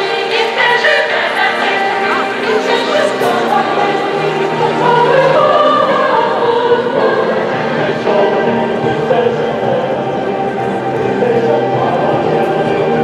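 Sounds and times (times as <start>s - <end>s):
choir singing with orchestra: 0.0s - 13.0s.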